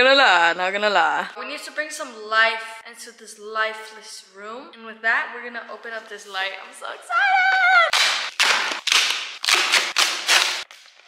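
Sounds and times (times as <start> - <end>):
cardboard tearing: 7.9 - 11.0.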